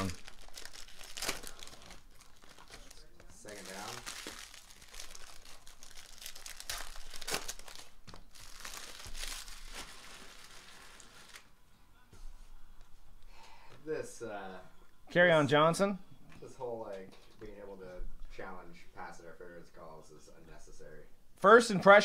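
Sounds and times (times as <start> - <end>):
foil wrappers crinkling: 0.0 - 11.5.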